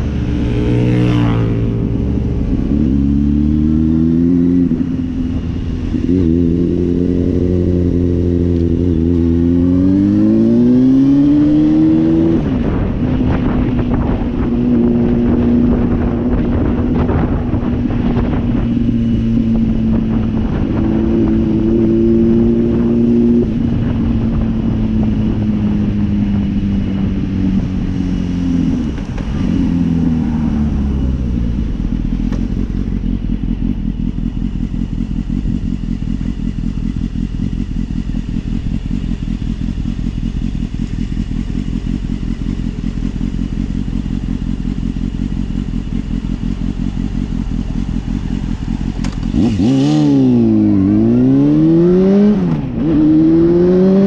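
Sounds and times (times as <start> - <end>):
motorcycle engine slowing and idling: 0.0 - 54.0.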